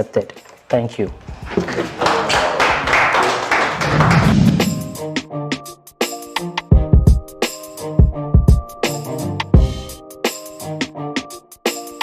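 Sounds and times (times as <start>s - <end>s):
audience applauding: 1.2s - 5.0s.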